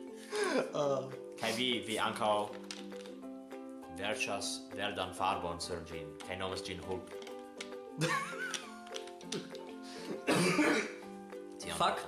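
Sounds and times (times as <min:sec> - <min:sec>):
background music held notes: 0:00.0 - 0:12.0
man speaking: 0:01.4 - 0:02.5
man laughing: 0:08.0 - 0:08.6.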